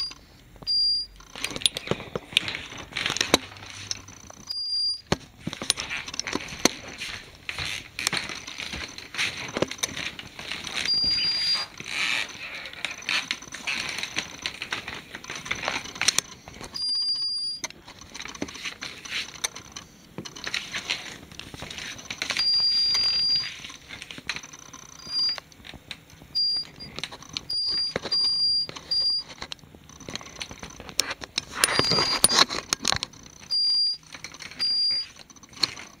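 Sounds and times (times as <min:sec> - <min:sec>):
metal detector beep: 0:00.0 - 0:01.2, 0:04.5 - 0:05.1, 0:10.7 - 0:13.2, 0:16.8 - 0:17.7, 0:22.3 - 0:23.6, 0:25.0 - 0:25.4, 0:26.3 - 0:29.3, 0:31.6 - 0:32.4, 0:33.5 - 0:35.2
device handling clicks and rustling: 0:00.1 - 0:36.0.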